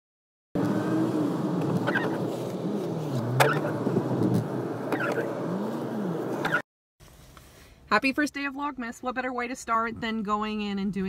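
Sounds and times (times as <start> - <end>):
car engine and road noise: 0.6 - 10.6.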